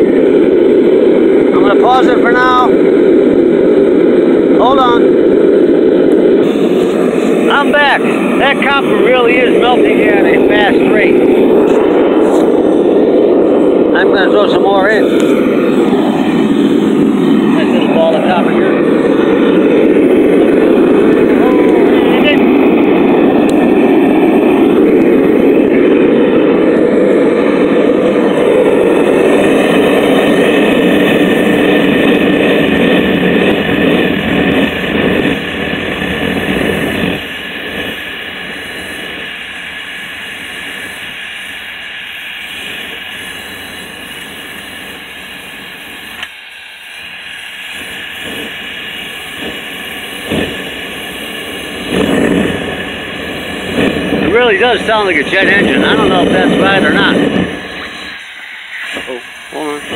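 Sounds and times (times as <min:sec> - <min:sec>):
propane burner roaring: 0:00.0 - 0:59.9.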